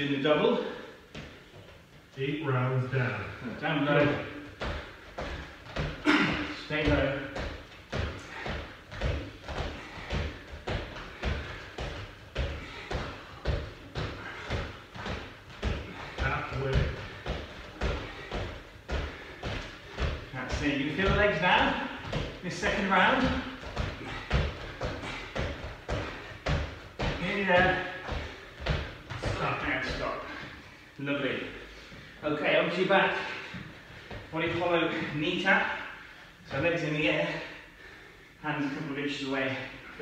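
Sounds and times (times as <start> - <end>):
steady thudding beat: 3.7 - 30.3.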